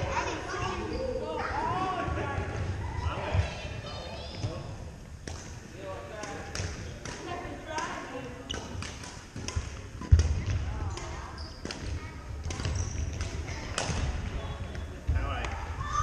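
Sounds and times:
voices chattering: 0.0 - 16.0
sneaker squeaks: 0.5 - 1.5, 8.4 - 8.9, 10.4 - 15.1
rackets striking shuttlecock: 6.2 - 14.1.

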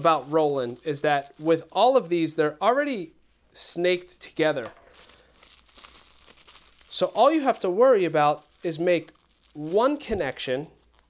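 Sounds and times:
small crackles: 0.0 - 2.1, 4.9 - 11.0
cable bundle rustling: 0.0 - 2.2, 4.6 - 11.0
plastic wrapping crinkling: 0.0 - 2.4, 4.8 - 11.0.

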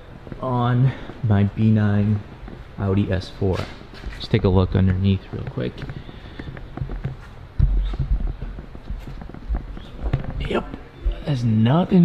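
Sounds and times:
footsteps: 0.0 - 12.0.

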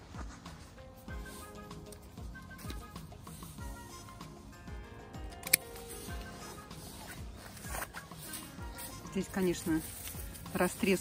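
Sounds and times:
background music with beat: 0.0 - 11.0
hand pruners snipping stem: 5.3 - 11.0.

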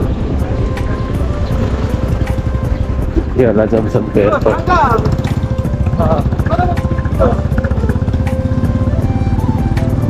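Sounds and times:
motorcycle engine running: 1.0 - 10.0.

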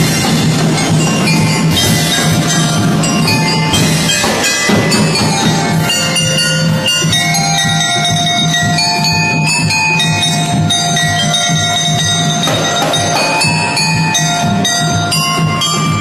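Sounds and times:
bell-lyre melody: 0.0 - 16.0
steady drum beat: 0.0 - 16.0.

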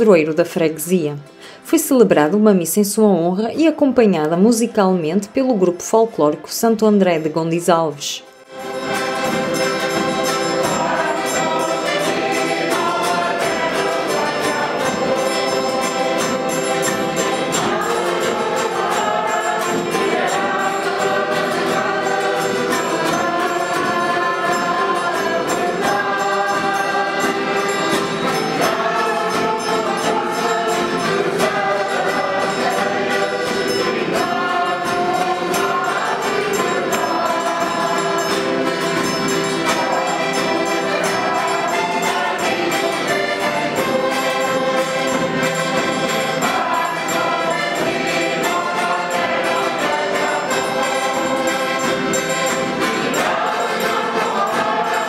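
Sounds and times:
choir singing a hymn: 8.5 - 55.0.

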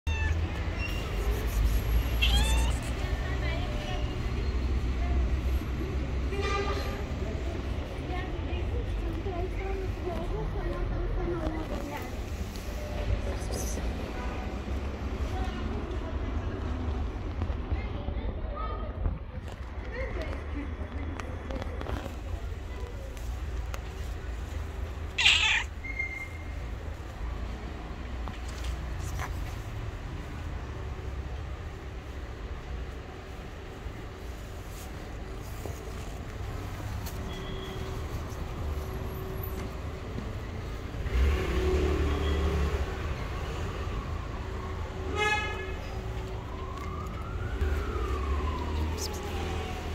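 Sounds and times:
cat meowing: 0.0 - 1.0, 2.1 - 3.0, 25.2 - 25.8
low rumble of traffic: 0.0 - 49.9.

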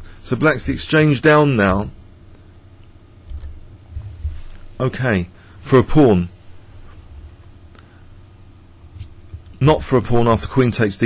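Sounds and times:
low hum with faint hiss: 0.0 - 11.0
soft low thumps: 3.2 - 4.8.

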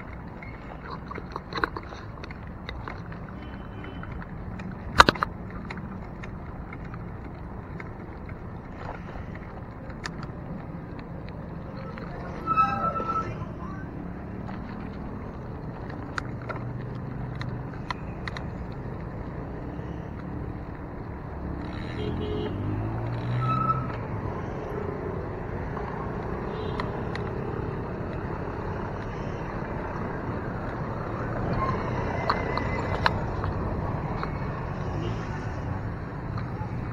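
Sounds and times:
bicycle clicks: 0.0 - 12.2, 14.0 - 22.2, 22.8 - 36.9
motor traffic: 0.0 - 36.9
vehicle engine accelerating: 18.8 - 36.9.

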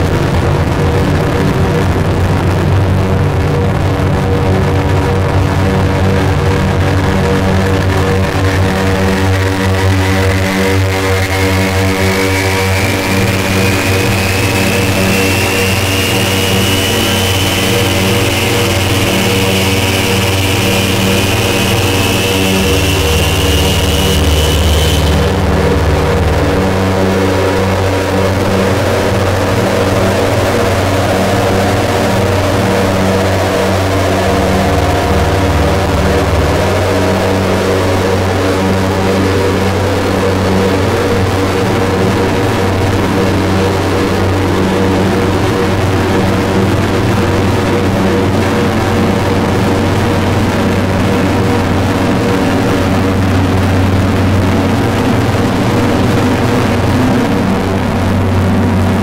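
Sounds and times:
harsh noise wall: 0.0 - 59.0
high whine gliding upward: 0.0 - 59.0
low droning tones: 0.0 - 59.0
lower whine rising: 0.0 - 59.0.

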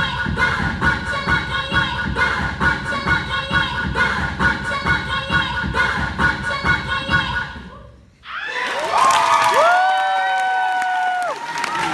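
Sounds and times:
dance music with steady beat: 0.0 - 7.6
audience cheering and whooping: 8.2 - 11.9.

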